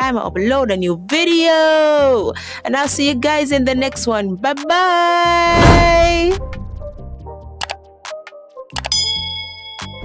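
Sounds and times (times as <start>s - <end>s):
mouse-style clicks: 8.7s - 9.0s
bright bell ding: 8.9s - 10.0s.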